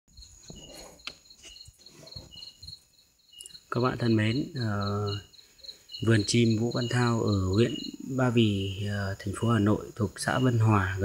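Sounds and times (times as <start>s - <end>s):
crickets chirping: 0.1s - 11.0s.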